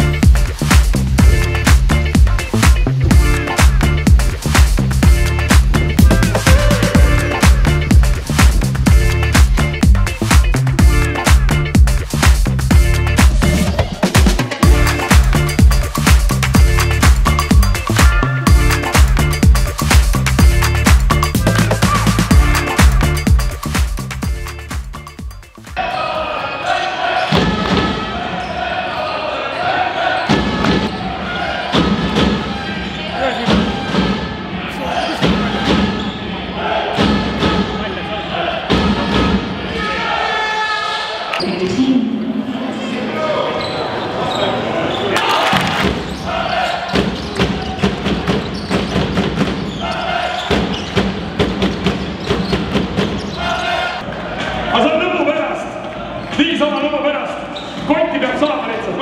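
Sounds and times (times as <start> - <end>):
crowd voices din: 25.8 - 48.6, 53.2 - 56.4.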